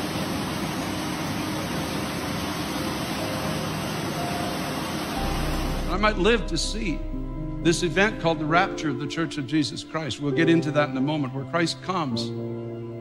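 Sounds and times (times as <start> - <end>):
steady rushing noise: 0.0 - 8.8
low hum: 0.0 - 9.5.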